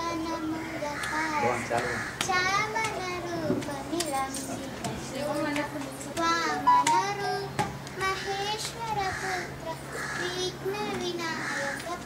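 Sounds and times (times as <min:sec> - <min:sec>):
girl singing: 0:00.0 - 0:01.4, 0:02.2 - 0:12.0.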